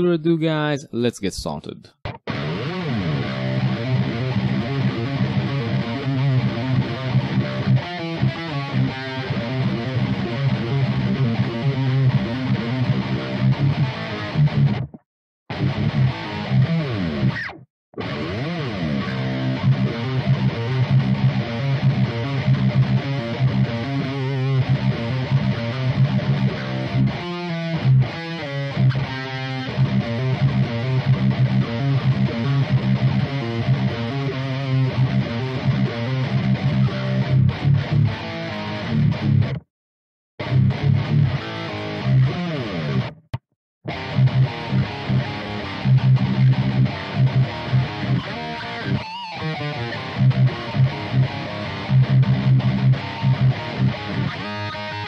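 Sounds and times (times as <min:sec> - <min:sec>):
distorted electric guitar riff: 0:02.0 - 0:39.6, 0:40.4 - 0:55.0.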